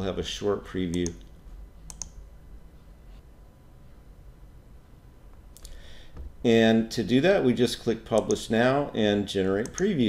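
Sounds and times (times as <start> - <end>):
faint low hum: 0.0 - 10.0
computer mouse clicks: 1.9 - 2.2, 9.6 - 9.9.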